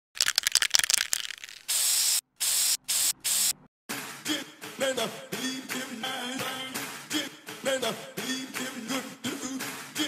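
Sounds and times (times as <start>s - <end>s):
spray can ball rattling: 0.2s - 3.5s
spray paint hissing: 1.1s - 3.6s.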